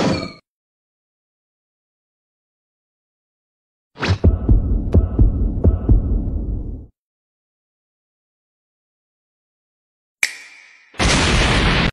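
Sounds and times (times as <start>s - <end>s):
heavy low thumps: 4.2s - 6.9s.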